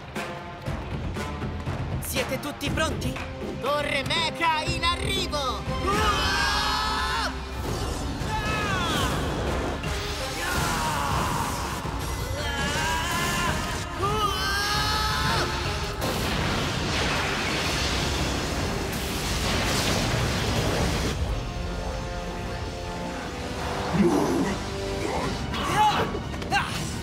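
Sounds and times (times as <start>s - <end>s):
dramatic music: 0.0s - 27.0s
energy sound effects and booms: 16.0s - 21.8s.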